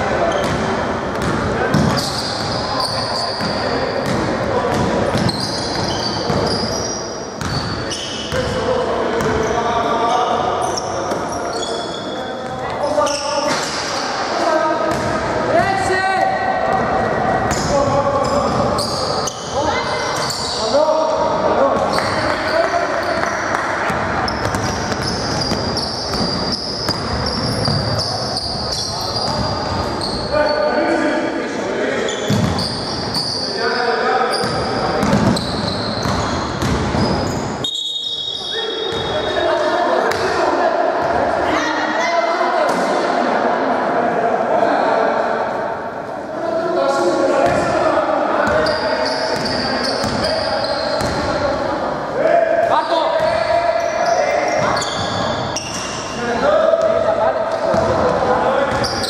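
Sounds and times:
sneaker squeaks: 0:00.3 - 0:08.6, 0:09.2 - 0:14.3, 0:17.4 - 0:21.0, 0:21.7 - 0:30.7, 0:32.0 - 0:40.3, 0:48.4 - 0:51.4, 0:52.7 - 0:58.1, 0:58.7 - 0:59.0.

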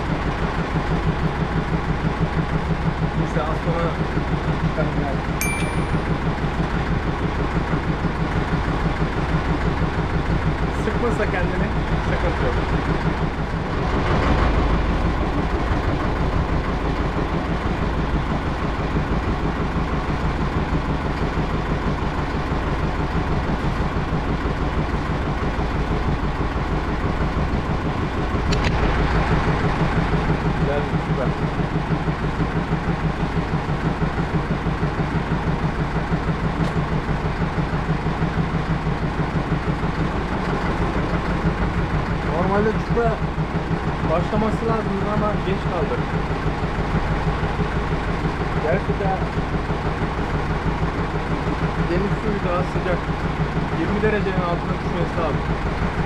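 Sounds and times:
boat engine idling: 0:00.0 - 0:56.0.

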